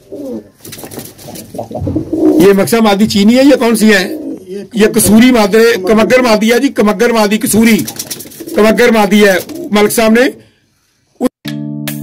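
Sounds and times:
pigeons cooing softly: 0.0 - 2.6, 3.6 - 4.8, 7.9 - 9.8.

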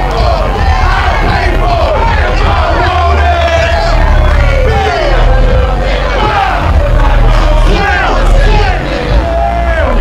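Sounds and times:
heavy bass beat: 0.0 - 10.0.

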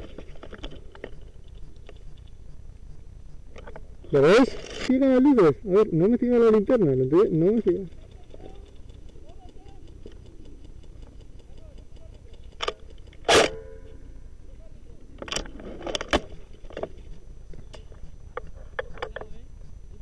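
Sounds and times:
faint clicks: 7.9 - 13.2
airsoft rifle shot: 12.6 - 13.9.

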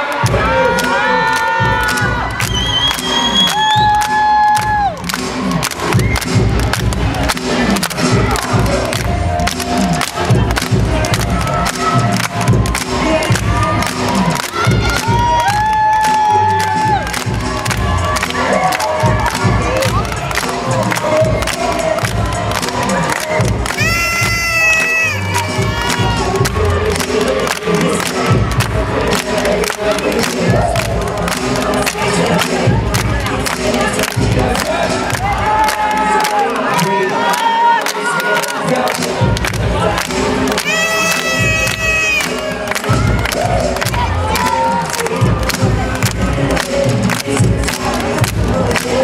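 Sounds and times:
hip hop dance music: 0.0 - 49.0
children cheering and shouting: 11.2 - 26.9, 34.7 - 39.3, 40.1 - 45.4
long high-pitched cries: 40.6 - 42.4.

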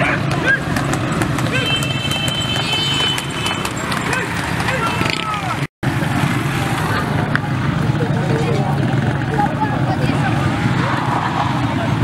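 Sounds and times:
motorcycle engines running: 0.0 - 12.0
hooves clip-clopping on pavement: 0.1 - 5.6
men shouting: 1.4 - 2.1.

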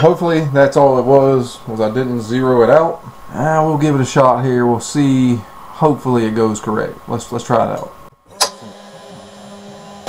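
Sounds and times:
cnc router humming: 8.3 - 10.0
machine switch click: 8.4 - 8.7.

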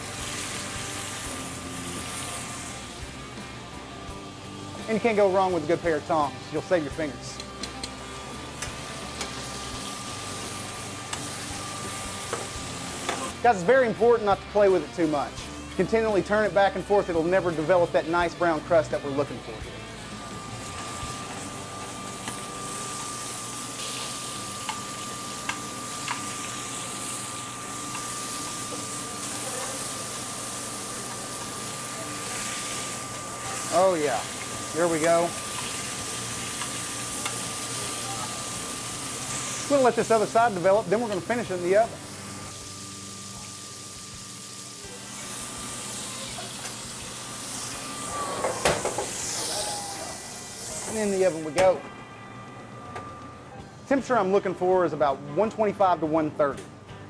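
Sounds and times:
meat sizzling in a skillet: 0.0 - 51.5.

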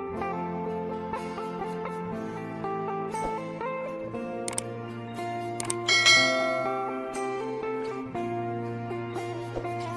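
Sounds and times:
background music: 0.0 - 9.9
button click effects: 5.6 - 7.0
bright chime: 5.9 - 7.4.

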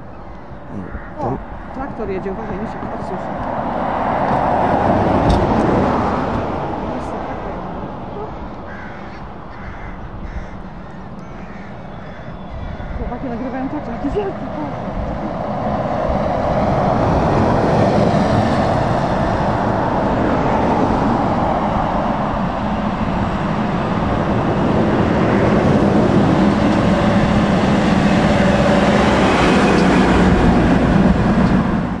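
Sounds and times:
heavy trucks passing: 0.0 - 32.0
tractor diesel engine hum: 4.4 - 32.0.

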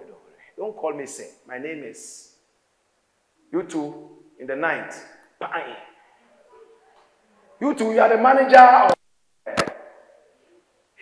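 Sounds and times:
short sharp snap: 8.9 - 9.9.

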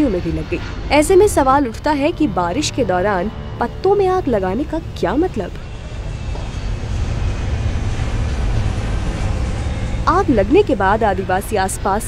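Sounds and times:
huts burning with rumbling hiss: 0.0 - 12.0.

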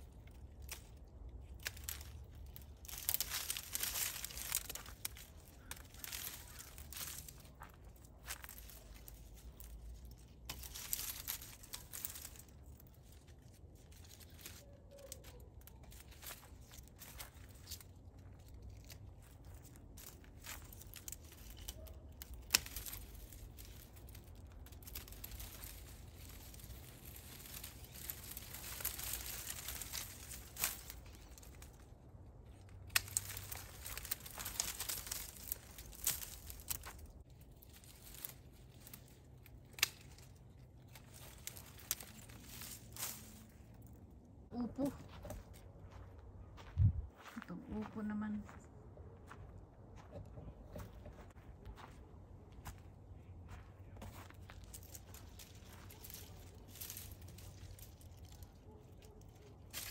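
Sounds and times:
dry stems rustling and tearing: 0.0 - 47.3, 53.9 - 59.9
pruning shears snipping: 0.5 - 7.6, 10.4 - 12.5, 20.0 - 31.7, 32.8 - 37.0, 37.7 - 43.5, 54.7 - 59.9.

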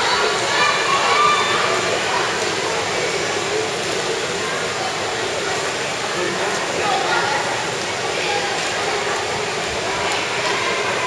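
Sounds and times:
voices around pool: 0.0 - 11.0.

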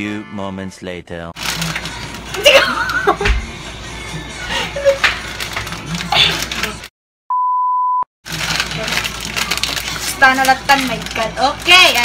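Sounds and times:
beep tone: 7.3 - 8.0.

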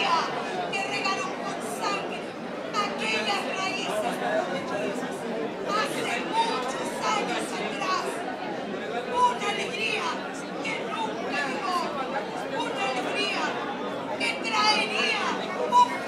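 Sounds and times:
woman talking into microphone: 0.0 - 4.1, 14.2 - 16.0.

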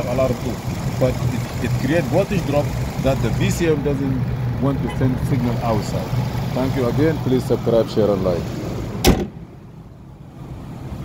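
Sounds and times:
car hood slamming shut: 9.0 - 9.4.

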